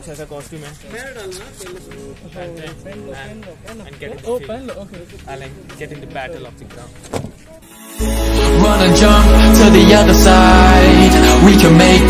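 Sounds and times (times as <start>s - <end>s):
voices: 0.0s - 7.6s
faint background music: 0.0s - 12.0s.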